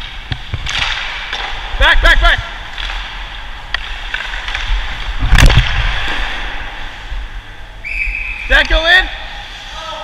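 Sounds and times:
hockey stick hitting puck: 0.0 - 1.8, 2.4 - 6.4.

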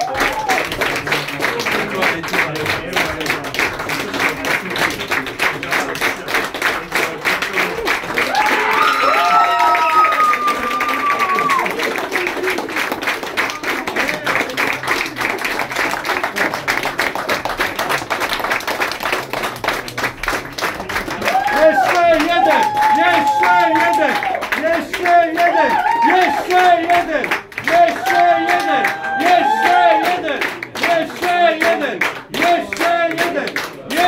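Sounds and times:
cheering: 0.0 - 1.2, 7.6 - 14.8, 20.9 - 34.0
audience clapping: 0.0 - 34.0
long whoop: 8.3 - 11.7.

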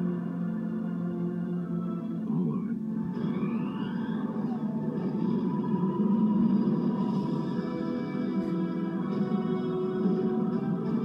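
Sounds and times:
film trailer music: 0.0 - 11.0.

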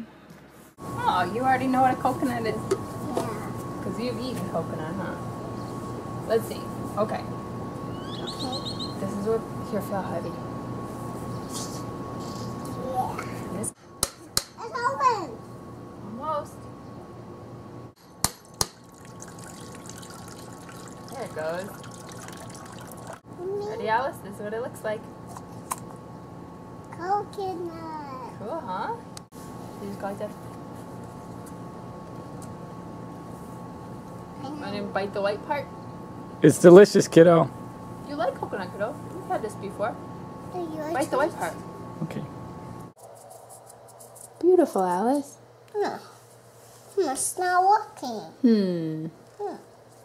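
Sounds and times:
liquid trickling into bowl: 18.6 - 23.2.

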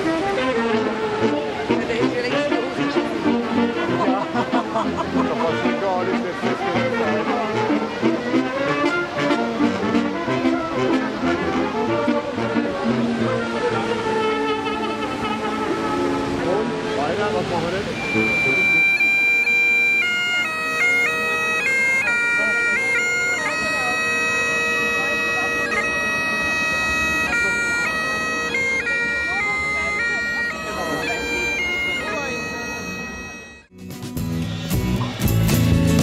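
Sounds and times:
bagpipes playing: 0.0 - 33.8
music: 0.0 - 36.0.

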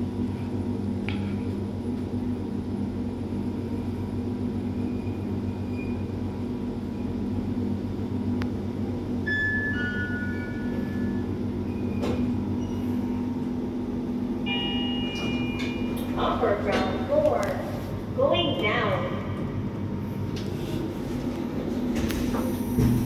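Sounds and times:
lift humming: 6.1 - 23.0.

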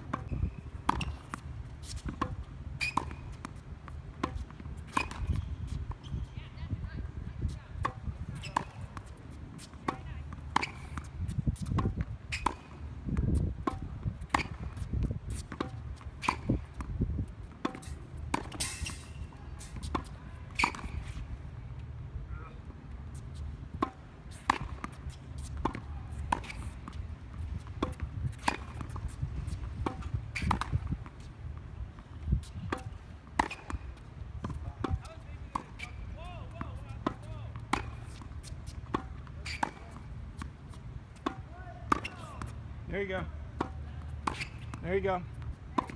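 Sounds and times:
tennis balls struck by rackets: 0.0 - 6.0, 7.8 - 21.4, 23.6 - 45.9
balls bouncing on hard court: 27.6 - 31.2, 34.4 - 40.5, 41.2 - 45.9.

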